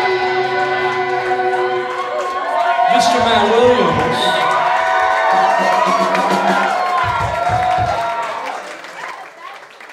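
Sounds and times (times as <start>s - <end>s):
live rock band sustained chord: 0.0s - 2.8s.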